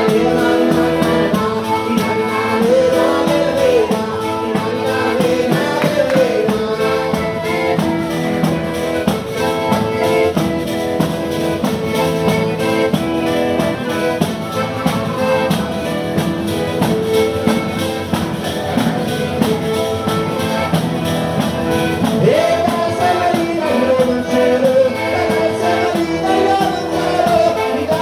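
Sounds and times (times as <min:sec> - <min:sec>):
folk band playing dance music: 0:00.0 - 0:28.0.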